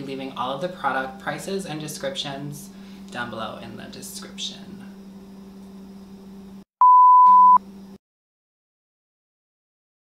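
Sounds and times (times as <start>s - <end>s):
faint room hum: 0.0s - 6.6s
electronic beep: 6.8s - 7.6s.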